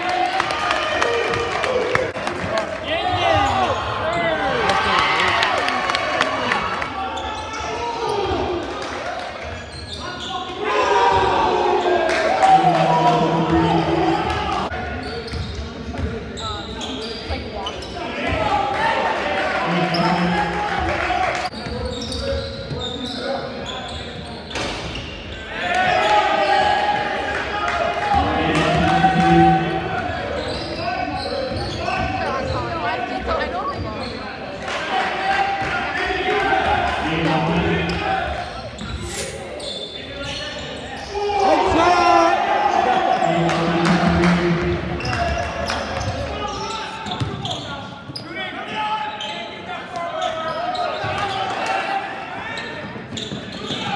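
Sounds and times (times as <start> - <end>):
players and spectators voices: 0.0 - 53.9.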